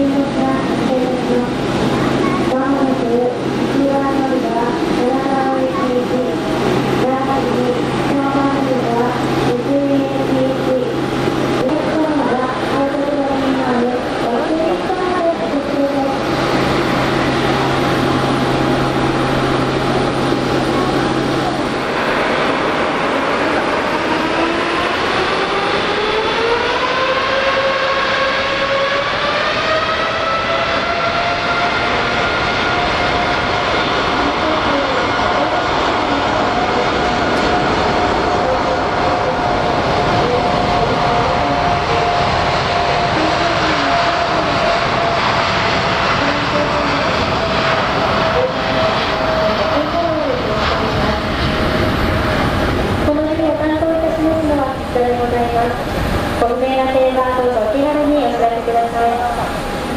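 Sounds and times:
jet engines spooling up: 0.0 - 59.9.

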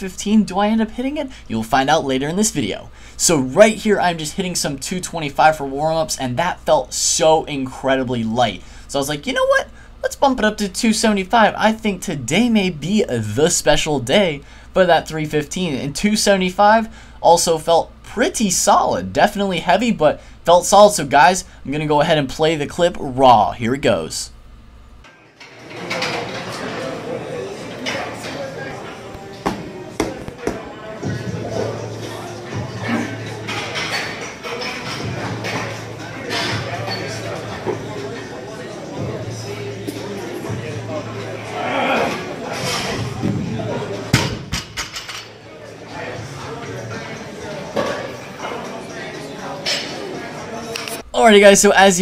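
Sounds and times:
people talking: 0.0 - 24.3, 35.7 - 52.0.

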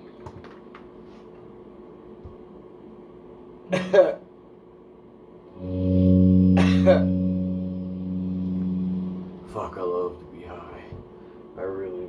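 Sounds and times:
electric guitar low note ringing: 5.6 - 9.9.

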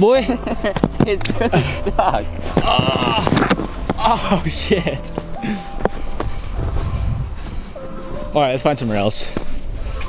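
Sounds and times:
low microphone rumble: 6.2 - 7.8.

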